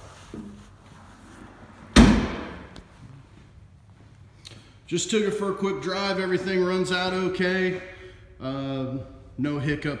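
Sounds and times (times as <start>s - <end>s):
tailgate slamming shut: 1.9s - 2.7s.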